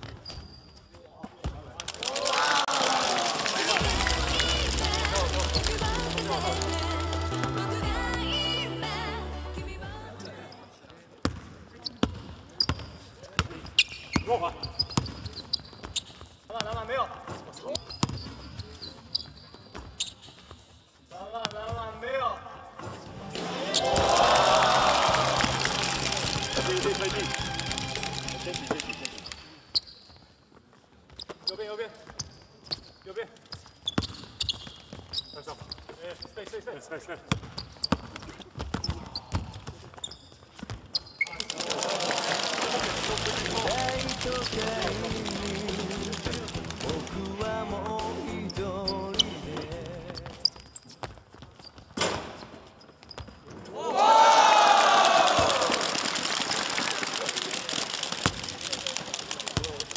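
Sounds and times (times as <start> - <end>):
players' voices: 1.1 - 15.5, 21.1 - 29.6, 41.3 - 50.4
crowd cheering and shouting: 2.0 - 10.1, 23.3 - 29.0, 41.5 - 47.3, 53.7 - 56.1
basketball bouncing on wooden floor: 11.2 - 18.7.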